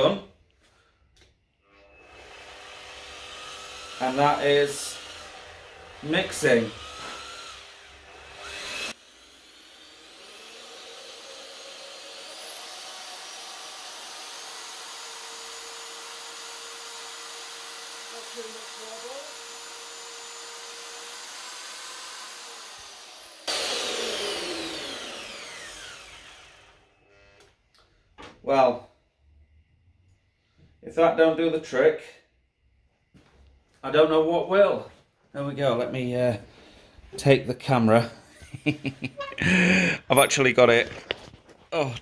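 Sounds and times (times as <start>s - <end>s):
electric paddle mixer whining: 1.6s - 27.5s.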